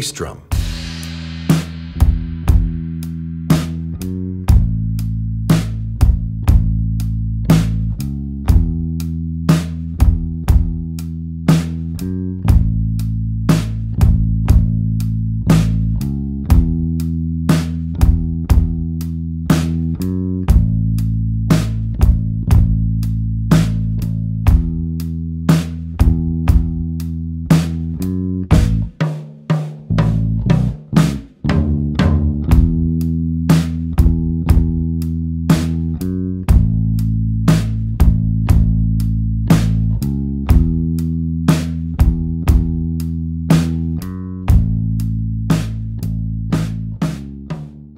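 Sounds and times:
sustained bass guitar notes: 0.0 - 29.0, 29.9 - 47.9
drum kit: 0.0 - 47.9.

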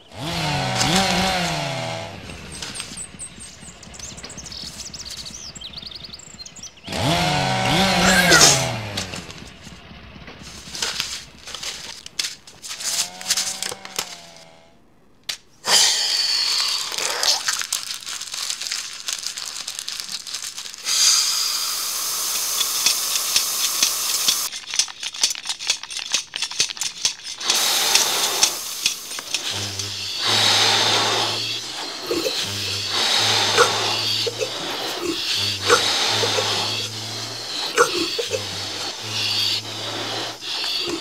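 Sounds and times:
rapid clicking: 0.0 - 14.2, 22.2 - 41.0
machine hissing: 0.0 - 14.3, 20.8 - 24.5, 27.3 - 41.0.

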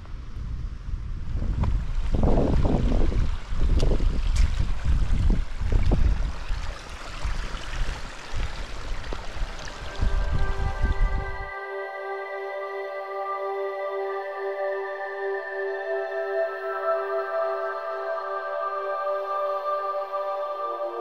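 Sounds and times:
wind buffeting microphone: 0.0 - 11.5
soft ambient music: 8.5 - 21.0.

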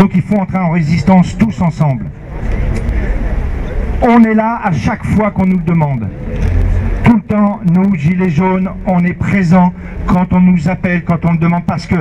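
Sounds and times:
vehicle passing on road: 1.0 - 11.1.

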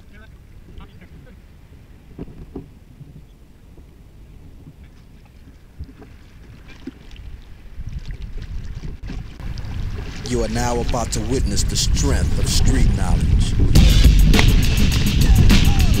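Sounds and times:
wind rumble on microphone: 0.0 - 16.0
paddle strokes splashing water: 0.1 - 16.0.

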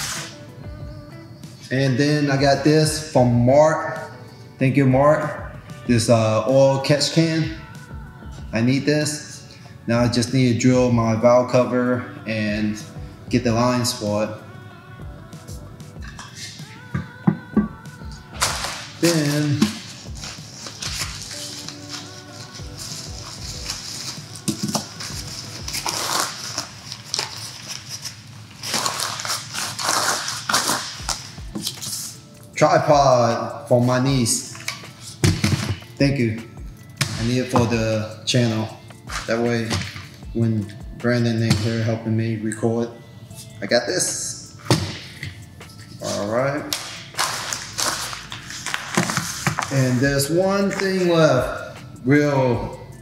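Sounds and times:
quiet background music: 0.0 - 53.0
bag and plastic crinkling: 18.4 - 31.8.

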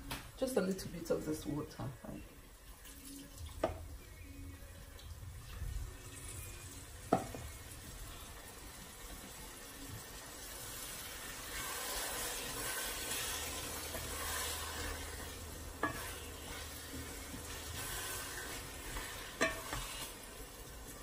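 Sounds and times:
water sizzling in pan: 4.9 - 21.0
wooden spoon stirring in metal pan: 10.0 - 21.0.

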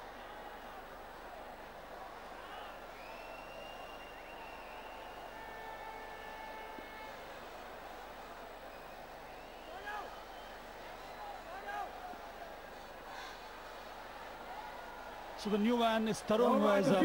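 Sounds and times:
murmur of crowd voices: 0.0 - 17.0.

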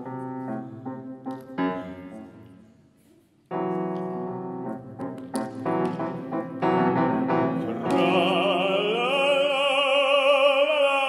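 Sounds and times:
grand piano chords: 0.0 - 2.6, 3.5 - 10.2.

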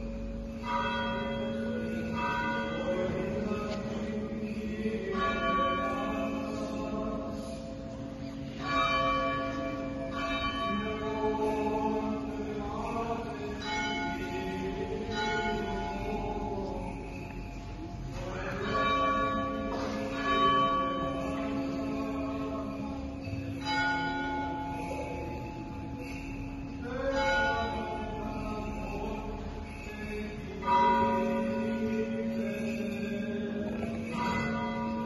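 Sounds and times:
church bell tolling: 0.0 - 35.0.

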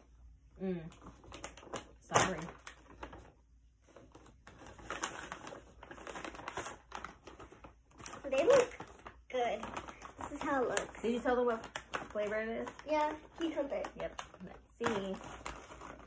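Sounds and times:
foil chip bag crinkling: 0.9 - 16.0.

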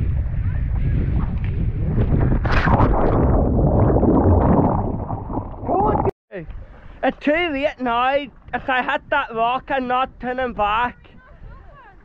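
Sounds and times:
wind rumble on microphone: 0.0 - 7.0, 7.6 - 12.0
splash into water: 2.2 - 6.1
churning water: 2.4 - 6.1.

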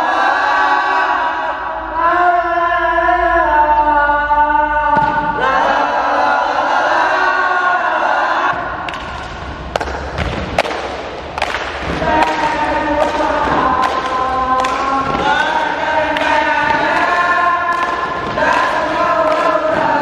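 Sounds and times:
children singing in unison: 0.0 - 8.7, 11.9 - 20.0
sharp percussive hits: 8.5 - 20.0.

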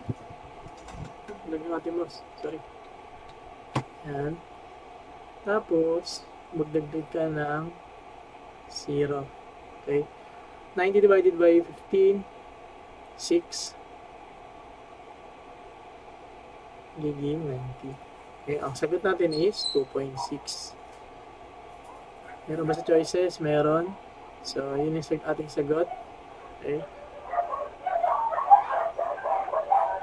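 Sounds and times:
low hiss: 0.0 - 30.0
animal yelping and whining: 25.9 - 30.0.

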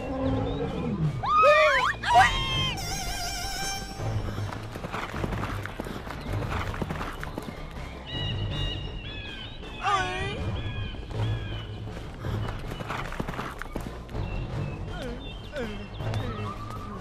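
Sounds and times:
background music: 0.0 - 17.0
irregular hoofbeats: 0.0 - 17.0.

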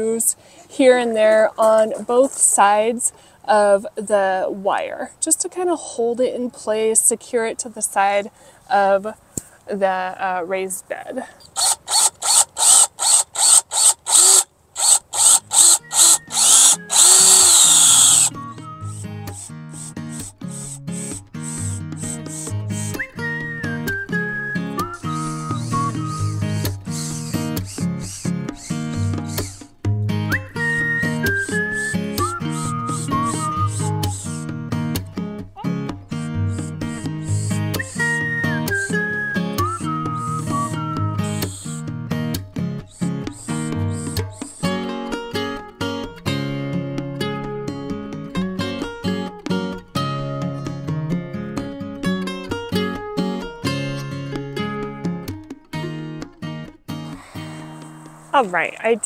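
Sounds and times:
cordless drill driving screws: 11.5 - 18.3, 19.4 - 22.5, 29.3 - 29.6, 31.3 - 34.4
music with plucked guitar: 18.3 - 57.6.

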